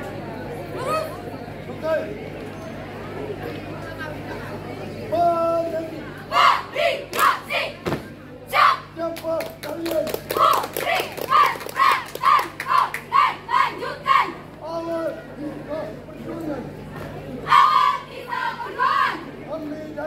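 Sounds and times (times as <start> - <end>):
people shouting in unison: 11.3 - 14.4.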